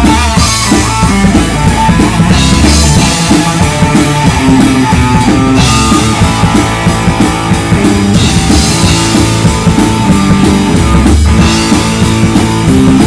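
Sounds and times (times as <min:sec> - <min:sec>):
bass guitar: 0:00.0 - 0:13.0
distorted electric guitar: 0:00.0 - 0:13.0
drum kit with crashing cymbals: 0:00.0 - 0:13.0.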